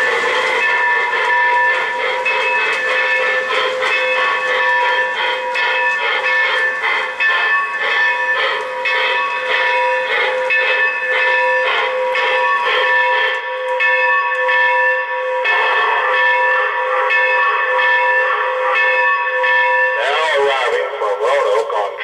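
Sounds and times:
locomotive bell ringing: 0:00.0 - 0:22.0.

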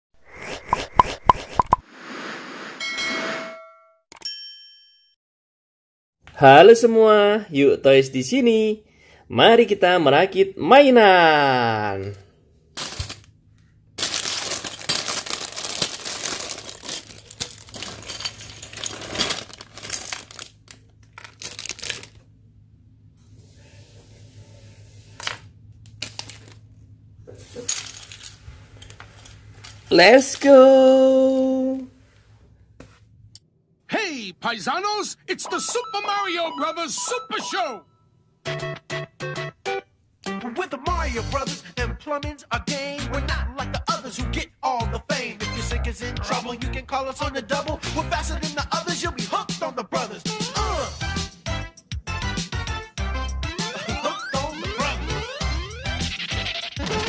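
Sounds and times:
noisy swish: 0:00.2 - 0:02.9
plastic toy pieces clattering: 0:12.8 - 0:13.3, 0:14.0 - 0:22.2, 0:25.2 - 0:26.6, 0:27.6 - 0:29.9.

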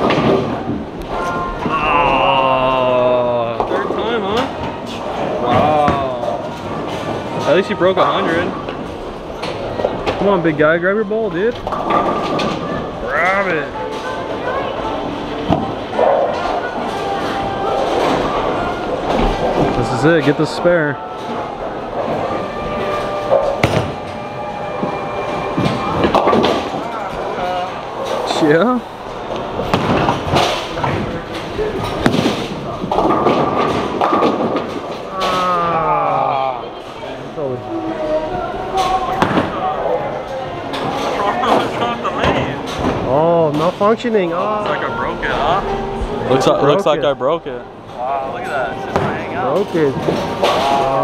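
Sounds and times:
bowling alley background noise: 0:00.0 - 0:51.0
voices: 0:35.0 - 0:51.0.

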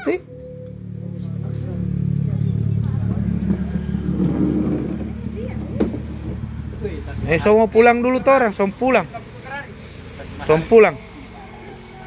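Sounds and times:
faint voices: 0:00.0 - 0:07.6, 0:08.5 - 0:12.0
vehicle engine running: 0:00.0 - 0:12.0.

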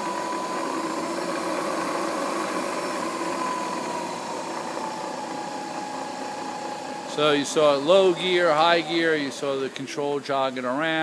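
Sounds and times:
mill spindle whine: 0:00.0 - 0:11.0.

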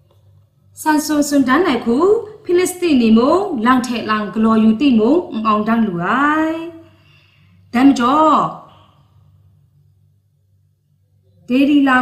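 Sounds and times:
faint low hum: 0:00.0 - 0:12.0
woman speaking: 0:00.8 - 0:06.9, 0:07.7 - 0:08.7, 0:11.4 - 0:12.0.

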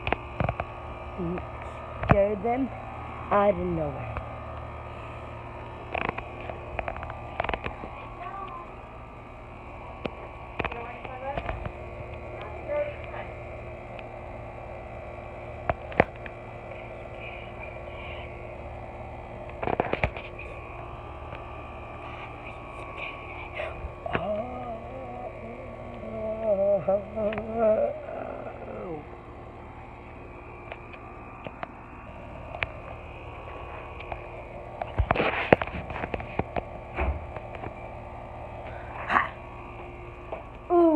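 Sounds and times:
steady low hum: 0:00.0 - 0:40.9
faint voices: 0:16.1 - 0:18.8, 0:21.9 - 0:29.4.

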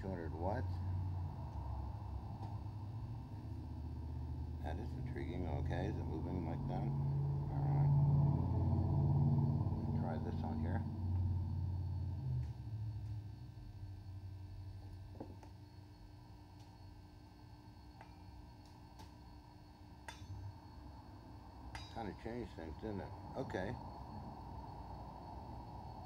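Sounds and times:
low electrical hum: 0:00.0 - 0:26.0.

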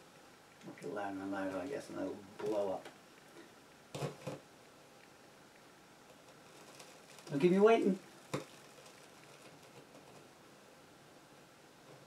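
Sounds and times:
faint steady hiss: 0:00.0 - 0:12.0
person speaking: 0:00.6 - 0:02.9, 0:07.3 - 0:08.1.

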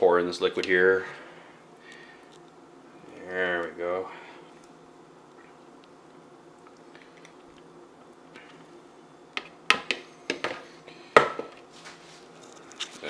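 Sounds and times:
faint room hum: 0:00.0 - 0:13.0.

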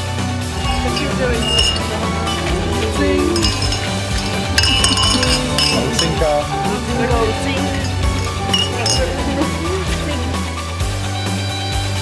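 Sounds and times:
background music: 0:00.0 - 0:12.0
glasses clinking: 0:00.5 - 0:10.4
voices: 0:00.5 - 0:10.6.

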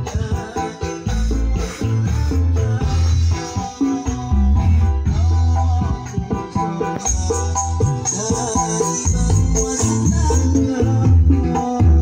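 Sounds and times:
heavy bass notes: 0:00.0 - 0:12.0
loud music through speakers: 0:00.0 - 0:12.0.

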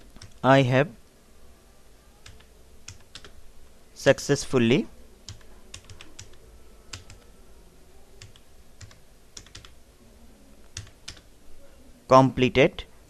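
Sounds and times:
computer keyboard typing: 0:00.1 - 0:00.4, 0:02.2 - 0:03.4, 0:05.3 - 0:07.3, 0:08.2 - 0:09.8, 0:10.7 - 0:11.3.

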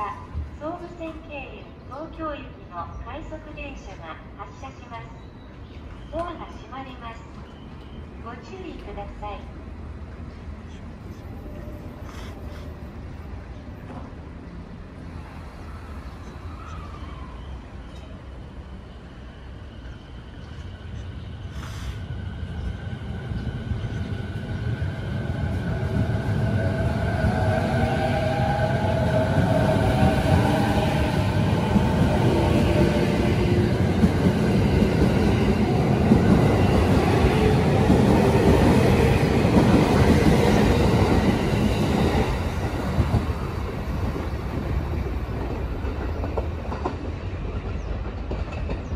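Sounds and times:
train cars running past: 0:05.3 - 0:48.9.

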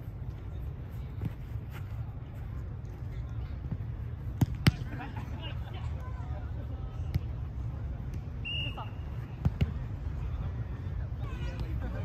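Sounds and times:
ball kicked on artificial turf: 0:03.7 - 0:04.9, 0:09.4 - 0:09.8.

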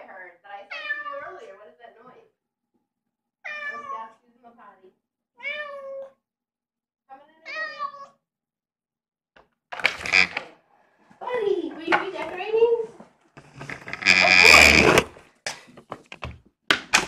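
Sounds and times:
cat meowing: 0:00.7 - 0:01.3, 0:03.4 - 0:04.2, 0:05.4 - 0:06.2, 0:07.4 - 0:08.2.

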